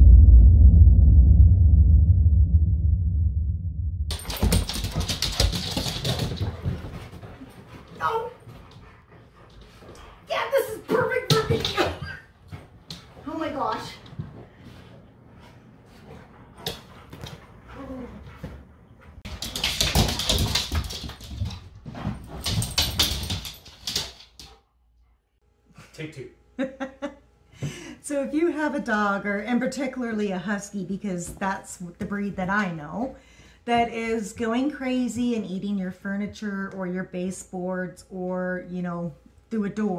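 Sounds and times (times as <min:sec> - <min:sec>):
dog claws on hard floor: 0:04.1 - 0:08.8, 0:19.2 - 0:24.6.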